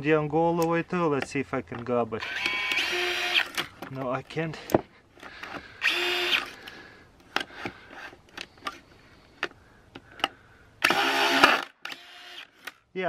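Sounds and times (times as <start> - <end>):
drill motor whir: 2.2 - 3.7, 5.4 - 6.6, 10.8 - 12.8.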